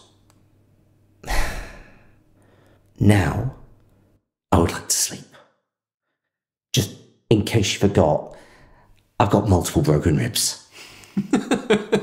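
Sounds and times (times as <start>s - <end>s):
person sighing: 1.2s - 2.2s.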